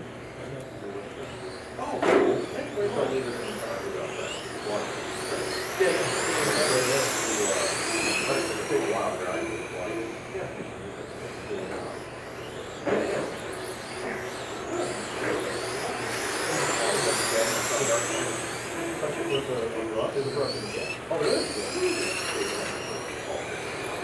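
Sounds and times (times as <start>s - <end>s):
electric toy car motors whining: 0.0s - 24.0s.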